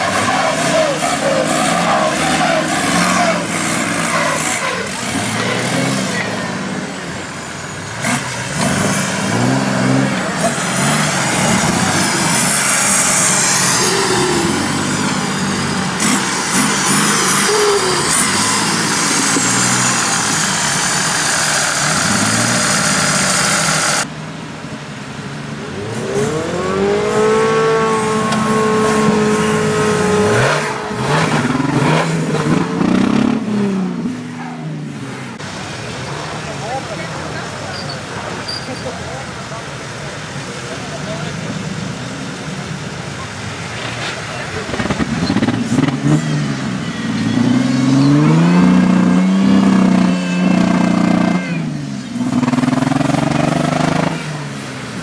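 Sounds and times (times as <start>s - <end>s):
off-road vehicle engine revving: 0.0s - 55.0s.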